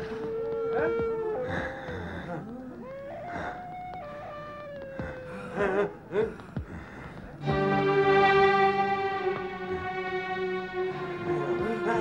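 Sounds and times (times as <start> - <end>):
eerie wailing cries: 0.0 - 6.9.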